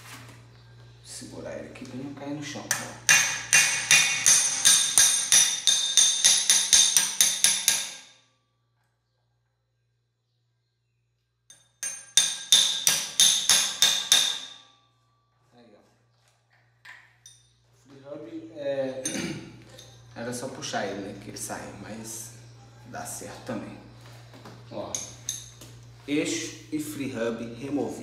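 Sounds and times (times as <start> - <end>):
metal tool tapping axle nut: 2.7 - 8.1, 11.5 - 14.6.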